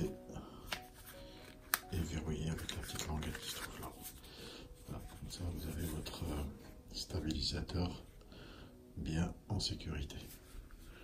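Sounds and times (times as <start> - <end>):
soft background music: 0.0 - 11.0
plastic case clicks: 1.6 - 1.9.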